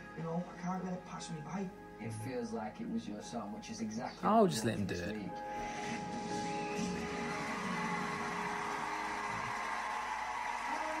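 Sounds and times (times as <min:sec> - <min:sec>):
faint music: 0:00.0 - 0:11.0
television audio noisy wash: 0:00.0 - 0:11.0.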